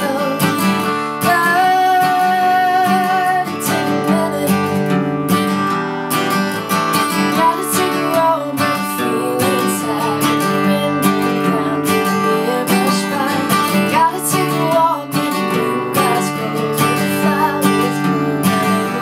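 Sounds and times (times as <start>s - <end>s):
woman singing: 0.0s - 5.2s, 6.9s - 19.0s
acoustic guitar strumming: 0.0s - 19.0s.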